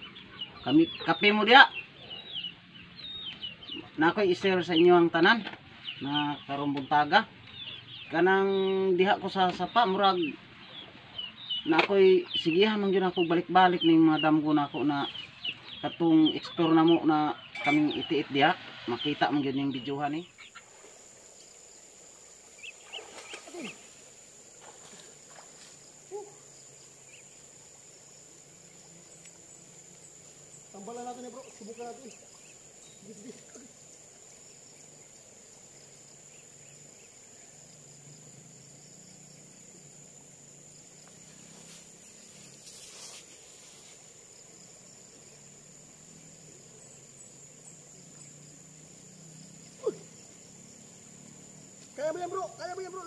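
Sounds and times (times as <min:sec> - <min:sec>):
faint birds chirping: 0:00.0 - 0:53.0
short distant calls: 0:47.2 - 0:53.0.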